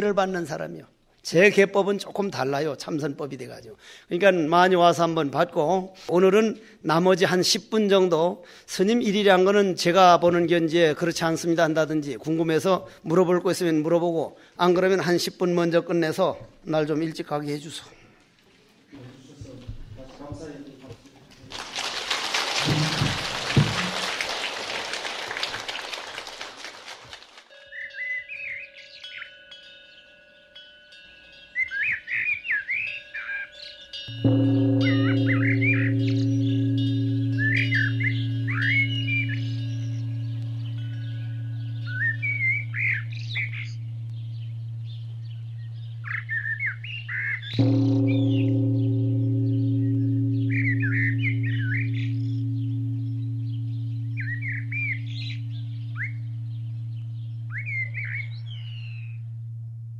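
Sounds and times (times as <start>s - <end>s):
small birds chirping: 27.8s - 30.3s, 31.2s - 59.5s
deep temple bell struck: 34.0s - 59.9s.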